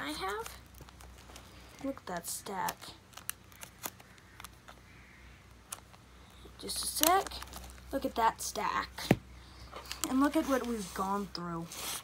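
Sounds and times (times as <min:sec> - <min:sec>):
trading cards clicking: 0:02.4 - 0:04.8.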